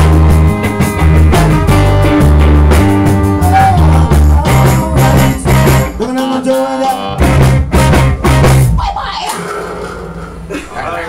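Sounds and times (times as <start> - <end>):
band playing ska music: 0.0 - 8.8.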